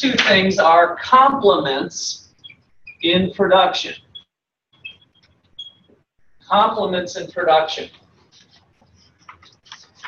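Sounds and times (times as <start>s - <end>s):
marker squeaking on a board: 2.2s - 3.2s, 4.0s - 6.6s, 7.9s - 10.0s.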